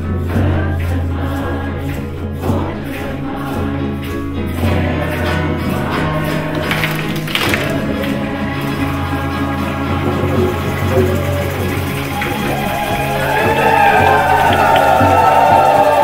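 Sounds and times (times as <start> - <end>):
frame drum: 0.0 - 16.0
group singing a chant: 0.0 - 16.0
strummed acoustic guitar: 0.0 - 16.0.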